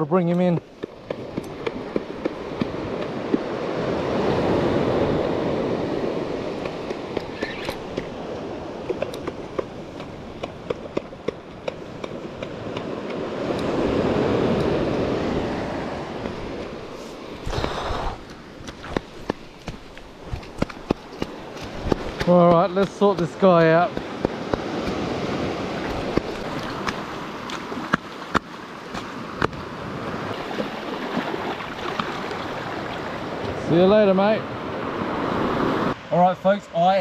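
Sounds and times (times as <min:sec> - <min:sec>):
surf washing up beach: 0:00.0 - 0:37.0.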